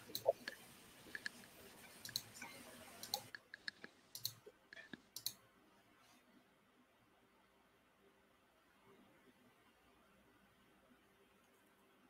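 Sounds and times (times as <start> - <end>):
faint small clicks: 0.1 - 2.4, 3.0 - 5.4.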